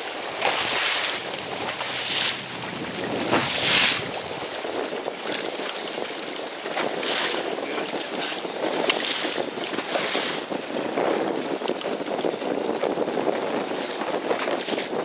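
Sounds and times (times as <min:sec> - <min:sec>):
choppy seawater splashing: 0:00.0 - 0:15.0
wind buffeting microphone: 0:00.0 - 0:15.0.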